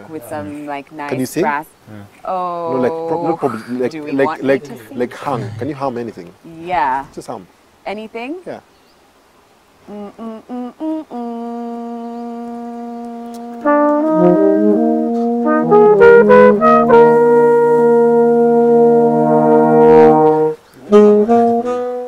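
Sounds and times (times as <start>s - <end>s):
horn section playing: 10.0s - 22.0s.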